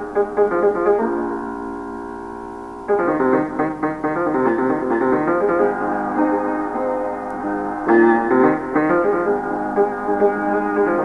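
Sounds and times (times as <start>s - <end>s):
solo piano melody: 0.0s - 11.0s.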